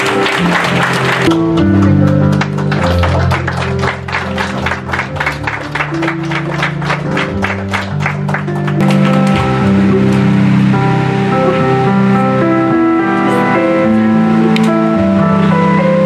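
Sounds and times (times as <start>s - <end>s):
people clapping in rhythm: 0.0s - 10.4s
background music: 0.0s - 16.0s.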